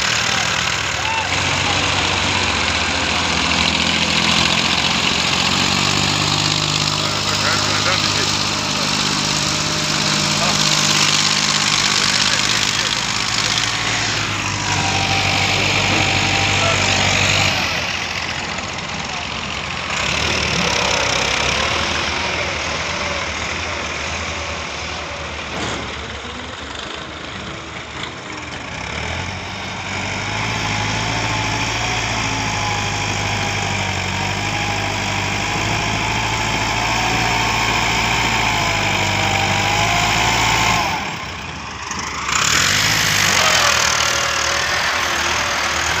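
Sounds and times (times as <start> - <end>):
tractor diesel engine under load: 0.0 - 46.0.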